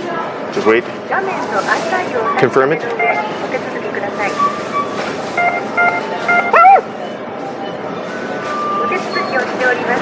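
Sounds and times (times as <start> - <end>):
short electronic beeps: 2.2 - 10.0.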